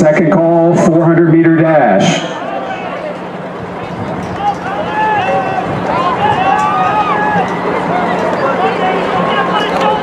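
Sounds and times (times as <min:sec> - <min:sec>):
overlapping voices calling out: 0:01.6 - 0:10.0.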